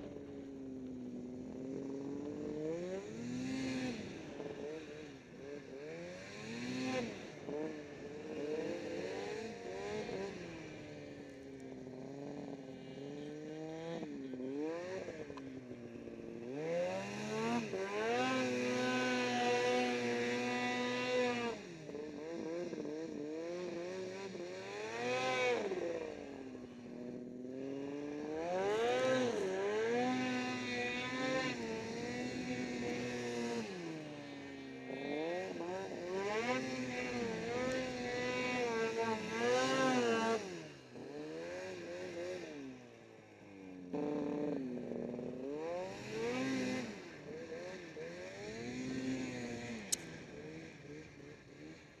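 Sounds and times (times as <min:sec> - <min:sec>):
snowmobile engine revving: 0:00.0 - 0:52.0.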